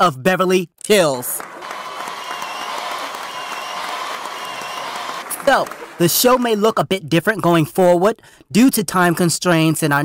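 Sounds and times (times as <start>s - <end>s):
audience clapping and cheering: 1.0s - 6.8s.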